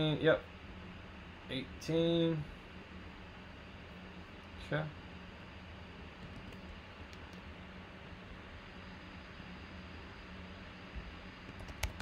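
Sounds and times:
steady low hum: 0.0s - 12.0s
computer mouse clicks: 6.2s - 7.4s, 11.5s - 12.0s.

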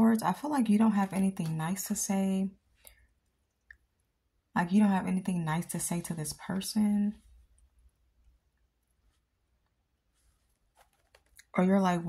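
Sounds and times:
woman speaking: 0.0s - 2.6s, 4.6s - 7.2s, 11.6s - 12.0s.

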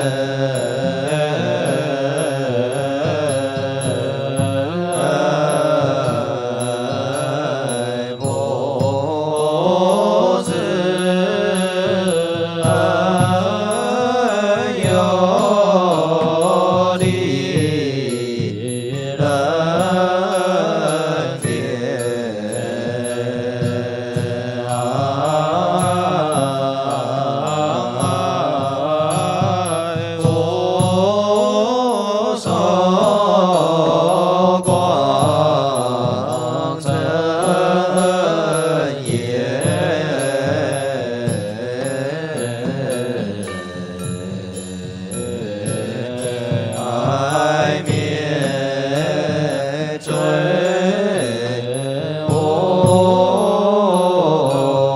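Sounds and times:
group chanting in unison: 0.0s - 54.9s.

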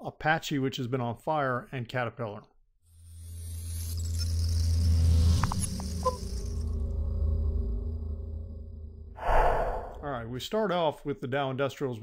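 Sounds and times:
low drone: 4.6s - 10.2s
deep bass swell: 6.7s - 10.3s
airy whoosh: 9.2s - 10.2s.

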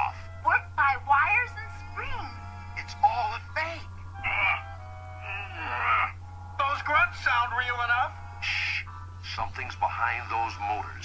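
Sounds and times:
background music: 0.0s - 9.2s
steady low hum: 0.0s - 11.0s.

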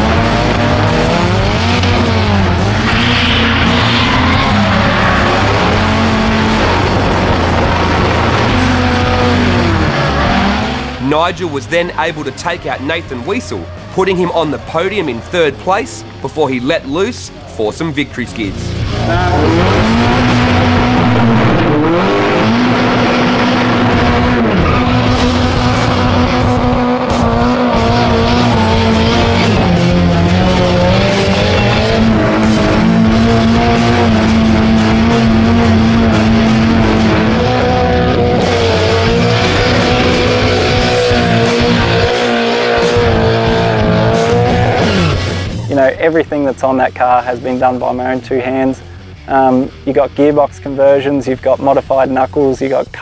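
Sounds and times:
car engine revving high: 0.0s - 16.8s, 18.5s - 45.7s.

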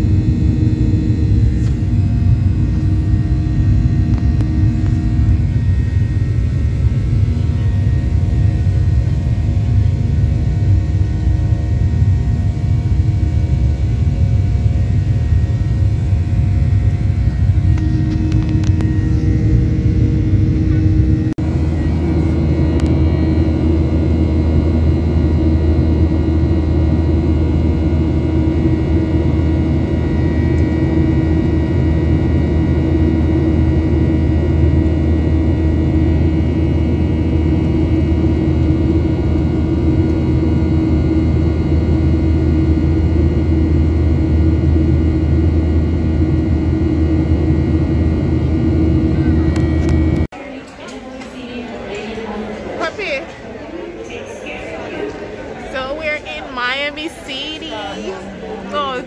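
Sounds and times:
jet engine drone: 0.0s - 50.3s
low hums: 0.0s - 50.3s.

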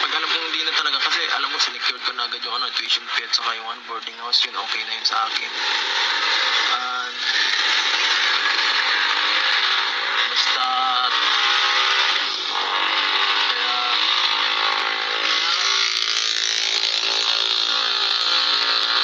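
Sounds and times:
road rush in car cabin: 0.0s - 19.0s.

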